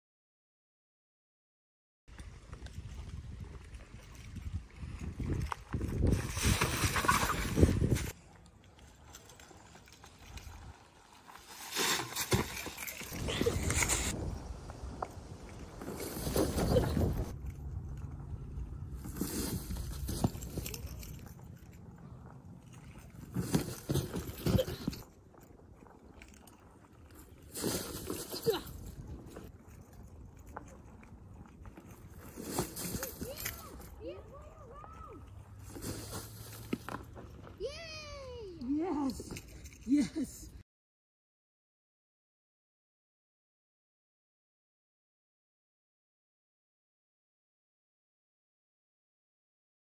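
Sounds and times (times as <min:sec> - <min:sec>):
unicycle riding over dry leaves: 0:09.0 - 0:38.5.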